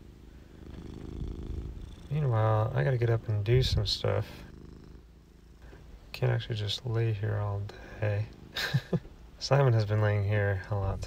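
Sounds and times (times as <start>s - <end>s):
cat purring: 0.0s - 11.0s.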